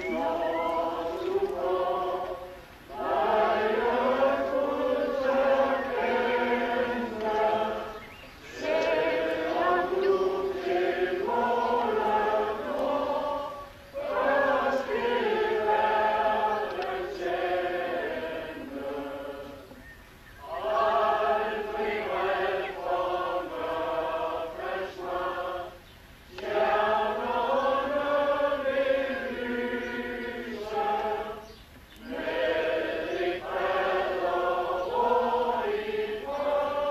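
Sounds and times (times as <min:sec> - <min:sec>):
group singing slow song: 0:00.0 - 0:36.9.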